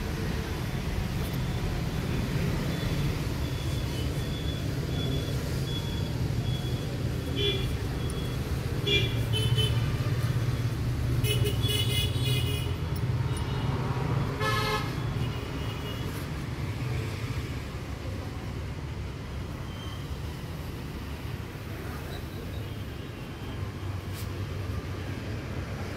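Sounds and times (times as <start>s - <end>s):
traffic engine rumble: 0.0s - 25.9s
vehicle horns tooting: 14.4s - 16.2s.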